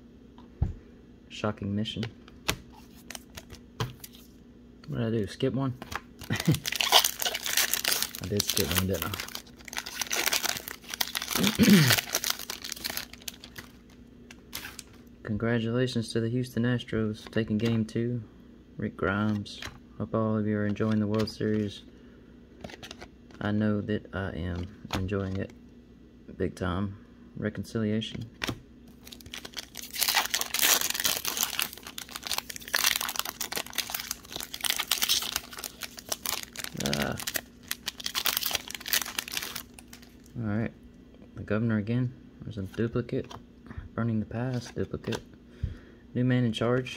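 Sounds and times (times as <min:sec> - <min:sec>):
wrapper crinkling: 0:06.2 - 0:14.9, 0:29.0 - 0:40.3.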